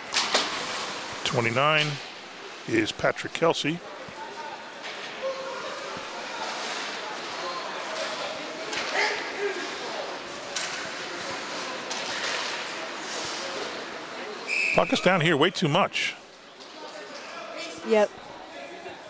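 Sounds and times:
steady background hiss: 0:00.1 - 0:04.8
distant crowd voices and shouts: 0:01.2 - 0:19.0
hockey sticks and puck clacking: 0:10.5 - 0:13.4.

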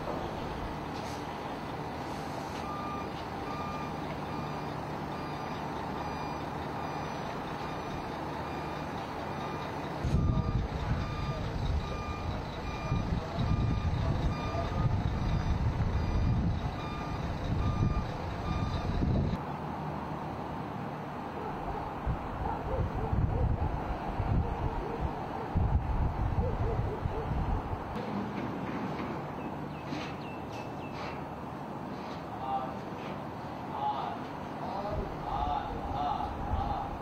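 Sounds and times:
reversing alarm beeping: 0:02.6 - 0:19.4.

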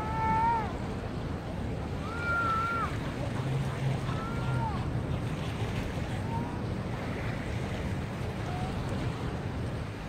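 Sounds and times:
small waves washing onto shore: 0:00.0 - 0:10.0
wind on microphone: 0:00.0 - 0:10.0.

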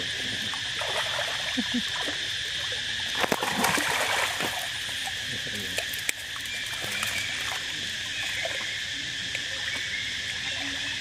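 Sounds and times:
insects droning: 0:00.0 - 0:11.0
water splashing and lapping: 0:00.0 - 0:11.0.

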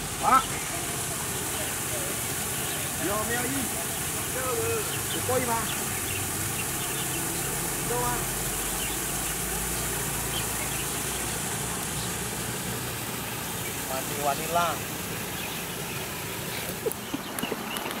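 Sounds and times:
even hiss: 0:00.0 - 0:18.0
distant voice: 0:00.1 - 0:15.0.

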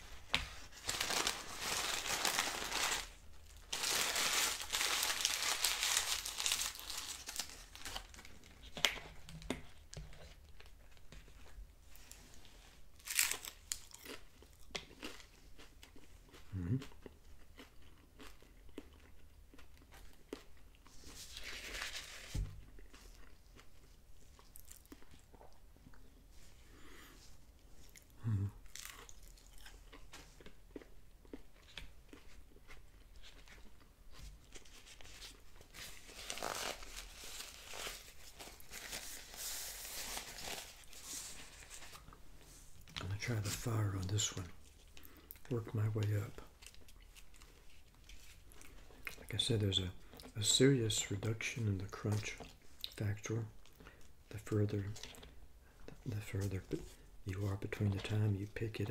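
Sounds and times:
taco shell crunching: 0:00.8 - 0:09.0, 0:13.0 - 0:26.1, 0:27.9 - 0:41.2.

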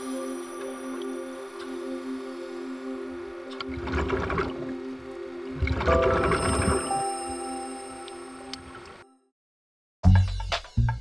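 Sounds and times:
ambient music with low notes: 0:00.0 - 0:09.3.

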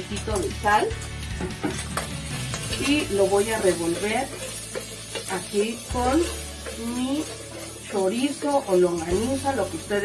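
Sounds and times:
pan sizzling: 0:00.0 - 0:10.0
wooden spoon scraping a pan: 0:01.4 - 0:10.0.

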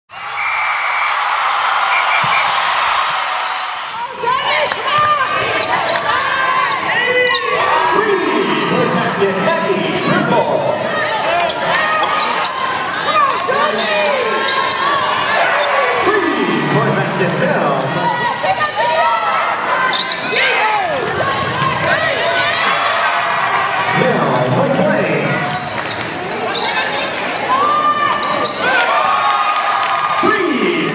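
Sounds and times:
sneakers squeaking: 0:01.9 - 0:03.2, 0:11.0 - 0:15.9, 0:18.1 - 0:19.0, 0:19.8 - 0:20.3, 0:25.4 - 0:28.7
voices in a gym: 0:03.8 - 0:30.9.

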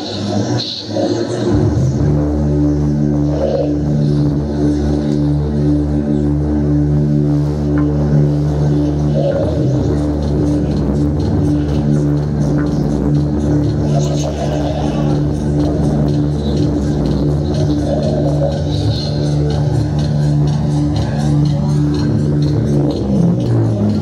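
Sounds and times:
bass guitar: 0:00.0 - 0:24.0
drums: 0:01.2 - 0:24.0.

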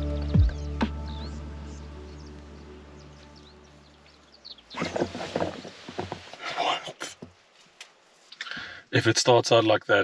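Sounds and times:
background music: 0:00.0 - 0:04.4
rustling and handling noise: 0:04.8 - 0:08.5.

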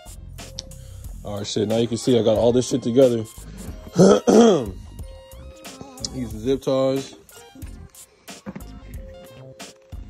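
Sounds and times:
quiet background music: 0:00.0 - 0:10.0
man clearing his throat: 0:03.9 - 0:04.8.

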